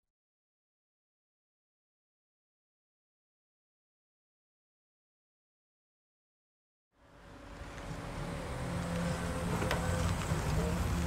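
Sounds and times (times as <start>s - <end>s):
car engine running at low revs: 7.0s - 11.0s.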